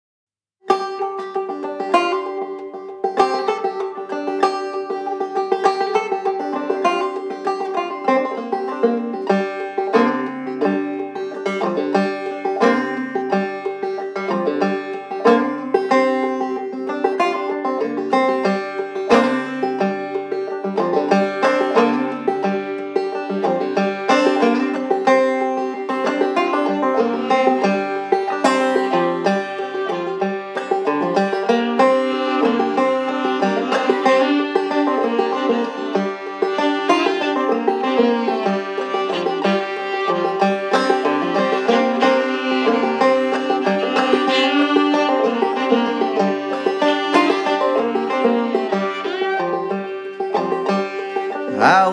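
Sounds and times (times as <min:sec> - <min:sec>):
banjo picking a tune: 0:00.6 - 0:51.9
fiddle bowing: 0:00.6 - 0:51.9.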